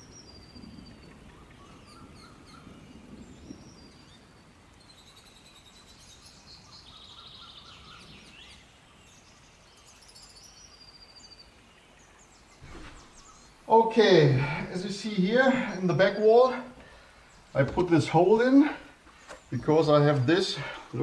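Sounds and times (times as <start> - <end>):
background hiss: 0.0 - 21.0
songbird chirps and trills: 0.0 - 21.0.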